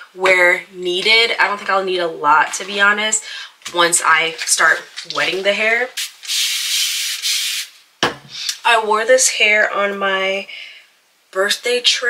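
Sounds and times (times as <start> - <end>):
spray bottle hissing: 6.0 - 7.8.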